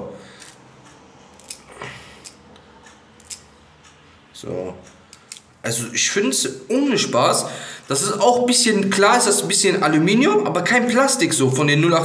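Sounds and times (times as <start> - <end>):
batteries and metal parts clicking: 0.4 - 0.6, 1.3 - 2.4, 3.2 - 3.5.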